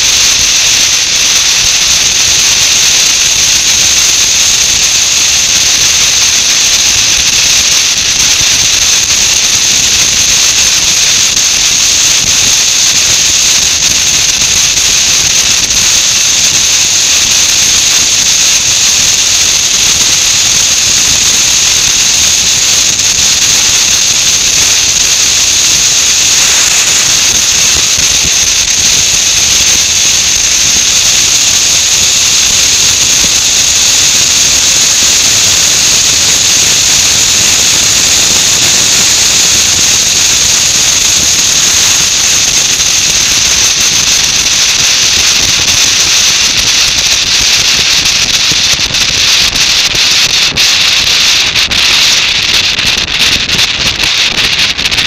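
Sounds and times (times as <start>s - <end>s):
road noise: 20.3s - 41.6s
wind rushing: 22.9s - 31.5s.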